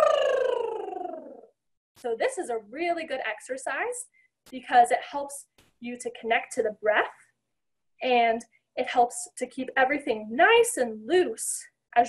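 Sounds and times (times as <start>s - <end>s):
woman's lip trill: 0.0s - 1.4s.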